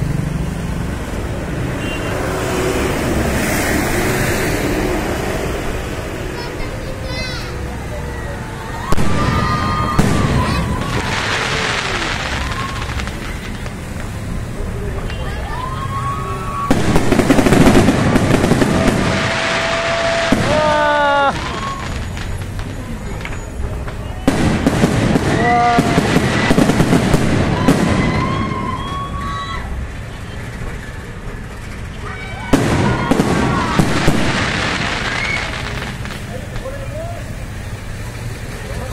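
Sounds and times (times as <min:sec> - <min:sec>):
firework shells bursting: 0:08.9 - 0:15.3, 0:16.6 - 0:28.7, 0:32.5 - 0:38.8.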